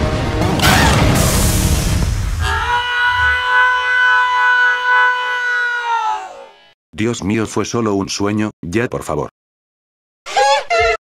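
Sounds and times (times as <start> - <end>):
cartoon explosion: 0.6 - 2.6.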